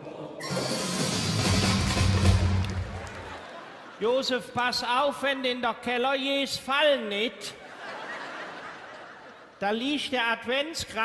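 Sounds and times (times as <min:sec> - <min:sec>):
audience applause: 0:01.4 - 0:03.8.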